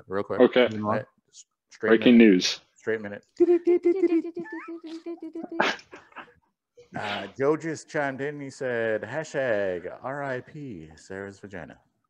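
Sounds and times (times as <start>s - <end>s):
person laughing: 3.4s - 6.4s.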